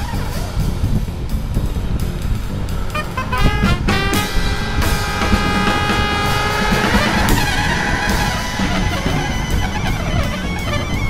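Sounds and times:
music with long held chords: 0.0s - 11.0s
steady low beat: 0.0s - 11.0s.

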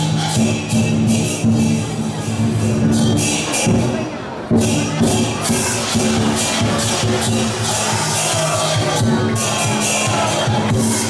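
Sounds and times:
clashing cymbals: 0.0s - 11.0s
crowd: 0.0s - 11.0s
drum beating: 0.0s - 11.0s.

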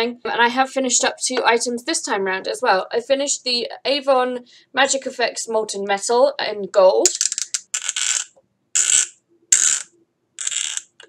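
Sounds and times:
screw cap scraping open: 7.1s - 11.0s.

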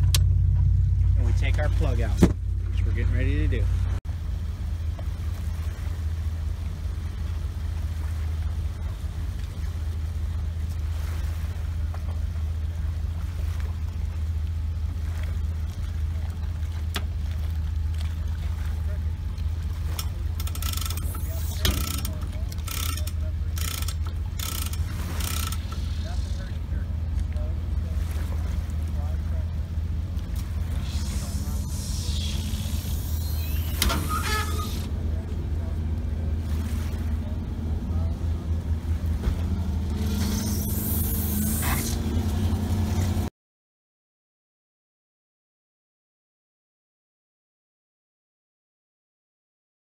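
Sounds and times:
boat engine idling: 0.0s - 43.3s.

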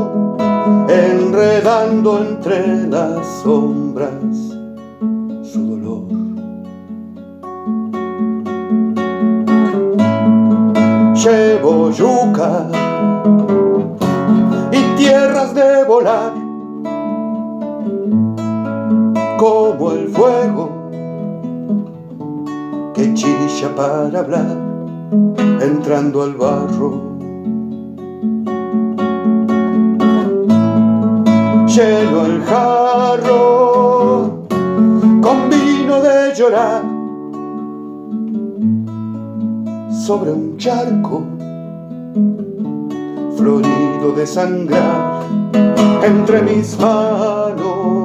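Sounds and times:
classical guitar strummed chords: 0.0s - 48.0s.

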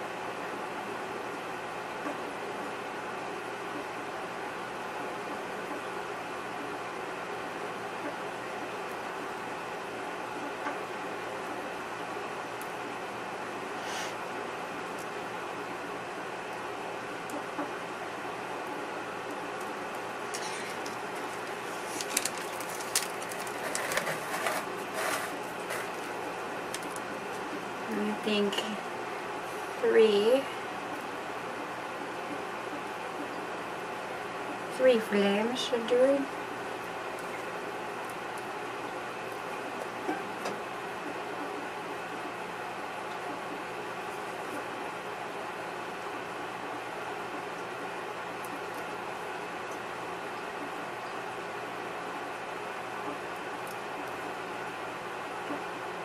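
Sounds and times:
room noise hiss: 0.0s - 56.0s.

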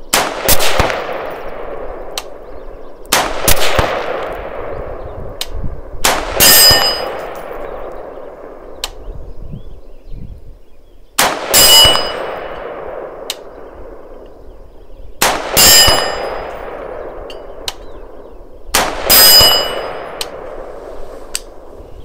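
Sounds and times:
distant gunshots: 0.0s - 5.4s, 6.0s - 9.0s, 11.2s - 14.3s, 15.2s - 20.7s
rifle shots: 0.0s - 8.8s, 11.2s - 14.2s, 15.2s - 20.8s
steel target plate clanging: 6.4s - 7.6s, 11.6s - 12.4s, 15.6s - 16.6s, 19.1s - 20.2s.

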